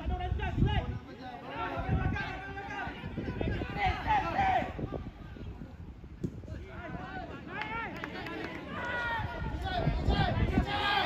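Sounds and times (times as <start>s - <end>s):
players shouting: 0.1s - 5.2s, 6.5s - 11.0s.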